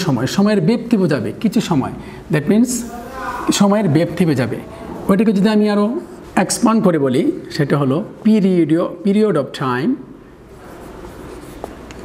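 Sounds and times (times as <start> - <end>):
marker scratching on whiteboard: 10.5 - 12.0.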